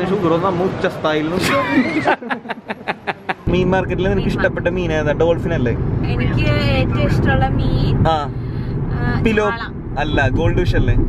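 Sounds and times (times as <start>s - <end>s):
car cabin rumble: 3.5s - 11.0s
woman talking: 6.0s - 8.0s, 8.9s - 9.8s.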